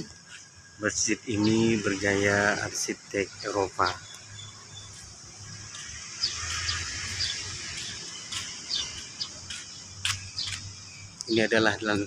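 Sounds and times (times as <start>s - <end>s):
high-pitched insect drone: 0.0s - 11.1s
high bird chirps: 1.3s - 12.0s.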